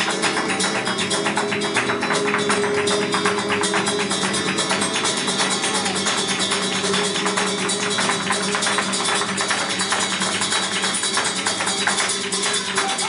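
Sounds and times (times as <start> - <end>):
flamenco guitar: 0.0 - 13.0
rapid hand-clapping: 0.0 - 13.0.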